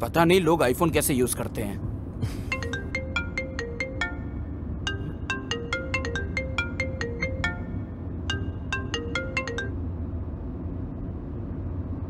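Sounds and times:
marimba-like phone ringtone: 0:02.5 - 0:09.8.

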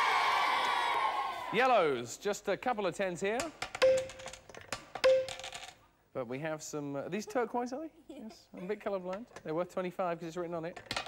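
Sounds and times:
plastic tokens clacking on acrylic box: 0:03.4 - 0:05.8.

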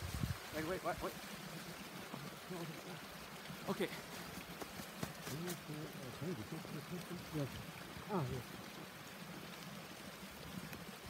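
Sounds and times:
stream rushing under snow: 0:00.0 - 0:11.0.

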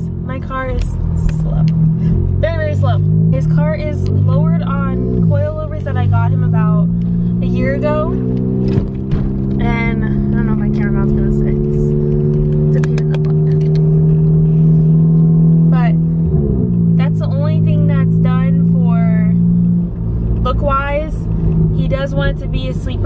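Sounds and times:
turbocharged car engine droning: 0:00.0 - 0:23.0.

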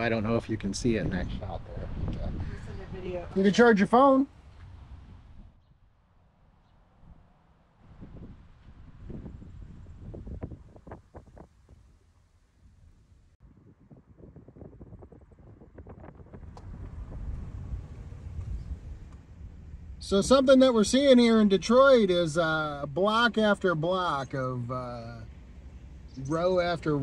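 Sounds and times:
wind buffeting microphone: 0:00.0 - 0:03.5, 0:07.8 - 0:12.1, 0:13.4 - 0:20.5.

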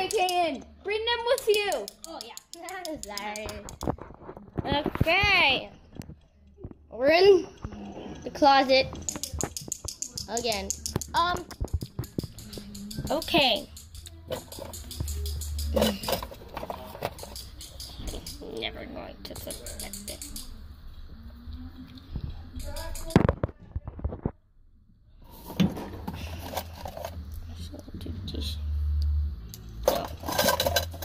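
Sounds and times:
quiet voices: 0:03.6 - 0:10.4.

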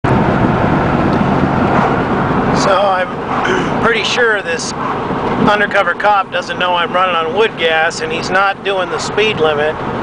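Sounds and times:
pickup engine and road noise: 0:00.0 - 0:10.0.

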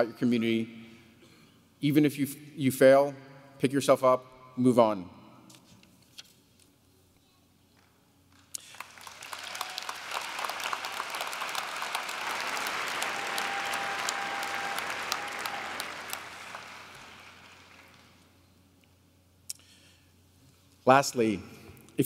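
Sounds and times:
audience applauding: 0:08.4 - 0:18.4.

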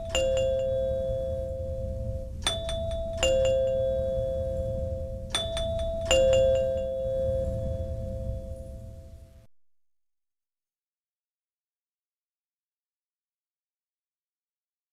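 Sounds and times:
two-tone doorbell chime: 0:00.0 - 0:09.3.

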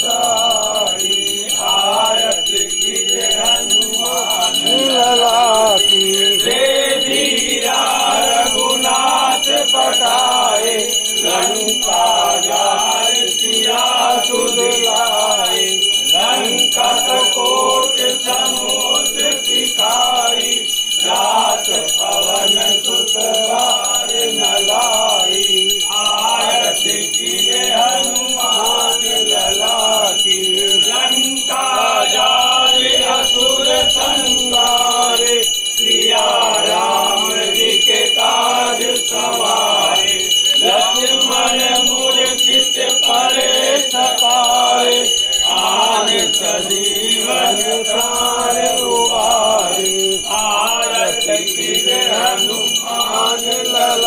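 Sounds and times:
men singing a hymn in unison: 0:00.0 - 0:54.0
small brass hand bell ringing: 0:00.0 - 0:54.0.

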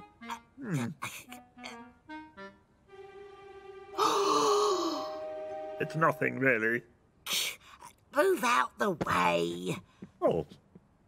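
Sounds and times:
cartoon soundtrack music: 0:00.0 - 0:06.8.

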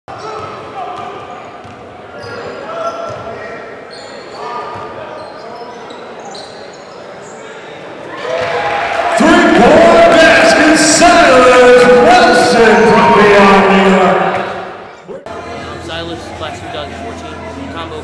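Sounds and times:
sneakers squeaking on court: 0:00.2 - 0:07.5.

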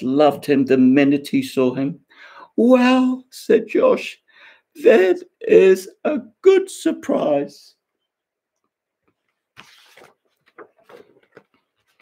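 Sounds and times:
book pages rustling: 0:09.0 - 0:12.0.

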